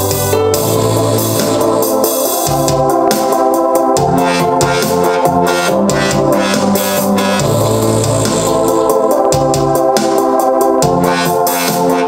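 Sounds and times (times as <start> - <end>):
held keyboard chords: 0.0 - 12.0
synth bass: 0.0 - 12.0
ticking hi-hat: 0.0 - 12.0.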